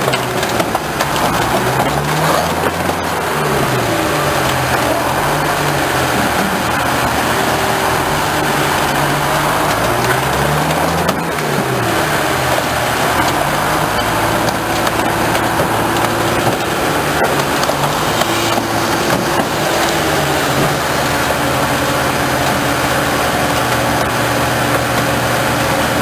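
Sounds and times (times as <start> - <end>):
car crusher engine and hydraulics: 0.0 - 26.0.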